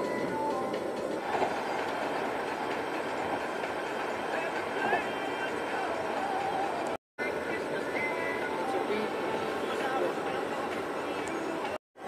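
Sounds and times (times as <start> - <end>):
car road and engine noise: 0.0 - 11.8.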